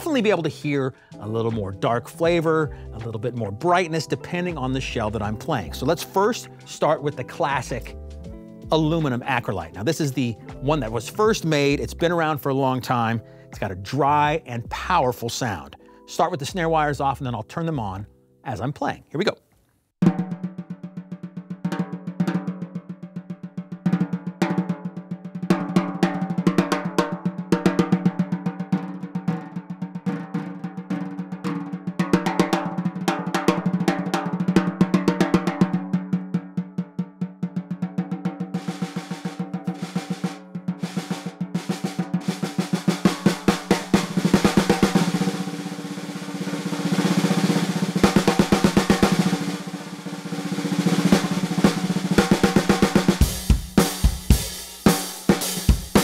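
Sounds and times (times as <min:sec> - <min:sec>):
snare drum strokes and rolls: 0:00.0 - 0:14.9, 0:20.0 - 0:56.0.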